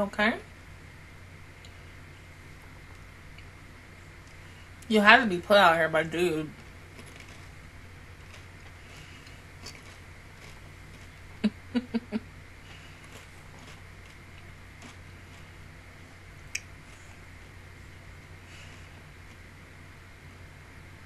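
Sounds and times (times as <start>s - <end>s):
steady low hum: 0.0s - 21.0s
person stifled chuckle: 11.4s - 12.3s.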